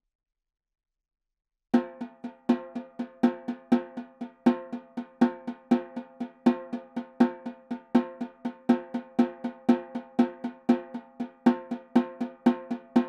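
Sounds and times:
snare drum played with sticks: 1.8s - 13.0s.

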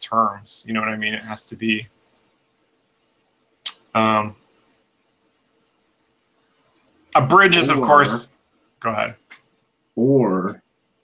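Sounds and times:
man speaking: 0.0s - 1.9s, 3.7s - 4.3s, 7.2s - 8.2s, 8.8s - 9.3s, 10.0s - 10.6s
faint steady hum: 0.0s - 11.0s.

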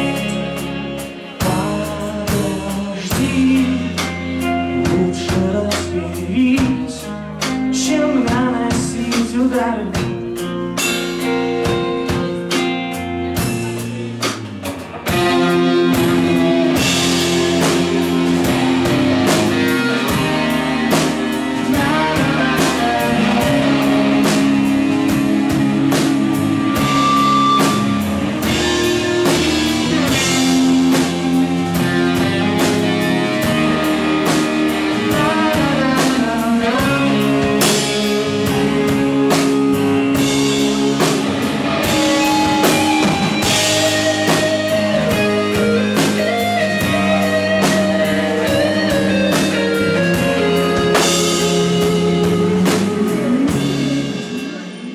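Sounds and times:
bass guitar: 0.0s - 54.9s
drum kit with cymbals: 0.0s - 54.9s
electric guitars: 0.0s - 54.9s.

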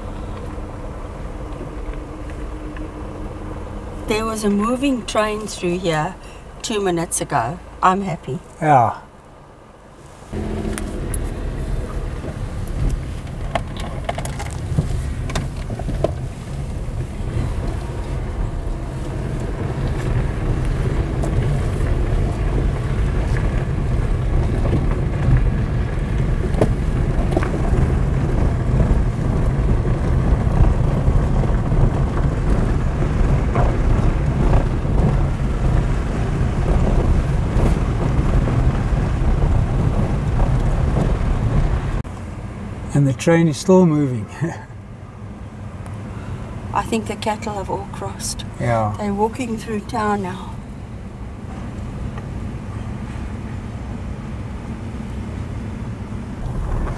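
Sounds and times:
wind buffeting microphone: 10.2s - 42.1s, 50.5s - 56.9s.

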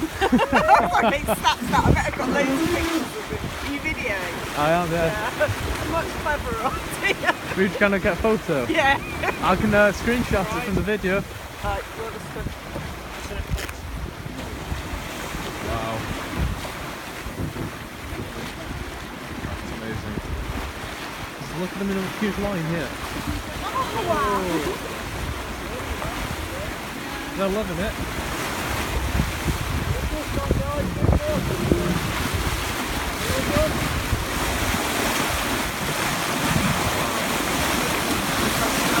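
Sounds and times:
wind buffeting microphone: 0.0s - 21.6s, 22.9s - 39.0s
choppy sea water rushing: 0.0s - 39.0s.

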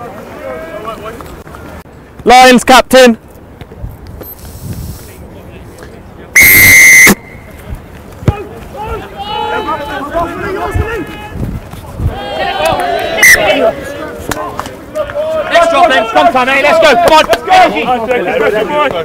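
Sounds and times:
referee's whistle blast: 6.4s - 7.5s
people shouting: 8.3s - 11.4s, 12.0s - 19.0s.

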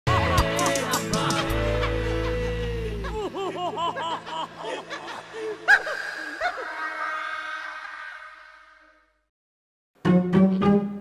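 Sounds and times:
cartoon laughing sound effect: 5.7s - 8.4s.

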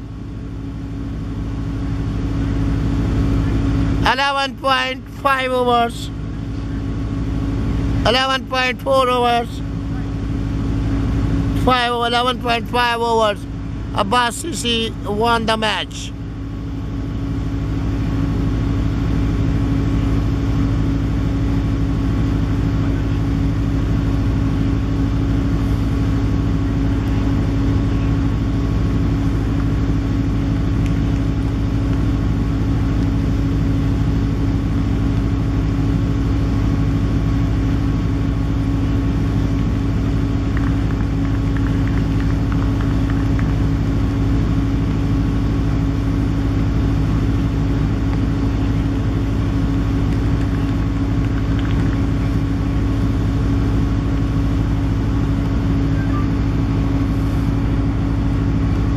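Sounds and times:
steady machine drone: 0.0s - 58.9s.

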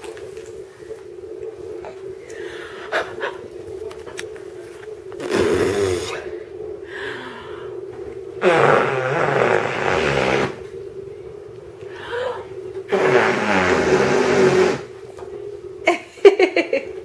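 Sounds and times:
steady low hum: 0.0s - 17.0s
person blowing raspberries: 5.2s - 6.3s, 8.4s - 10.7s, 12.9s - 14.9s.

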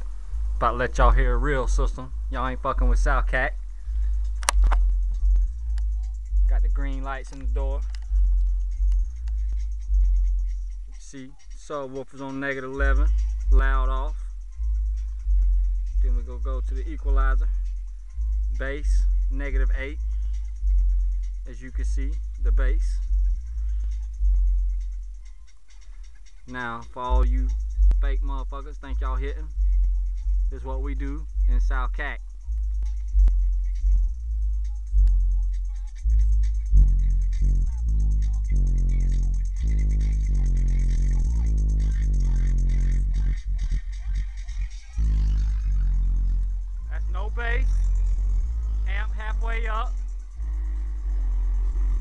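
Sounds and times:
deep bass notes from subwoofers: 0.0s - 52.0s
music from car stereo: 0.0s - 52.0s.

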